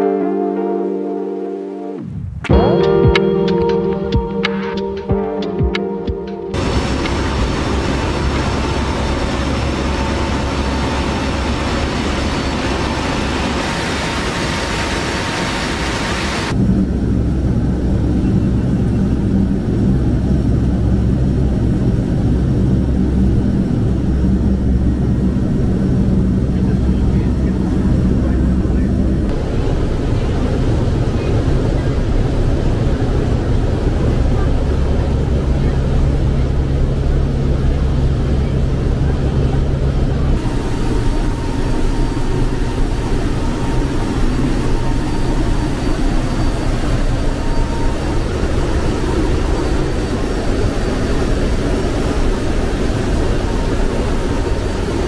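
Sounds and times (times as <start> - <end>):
deep steady engine hum: 2.0 - 55.0
wind rushing with engine noise: 6.5 - 55.0.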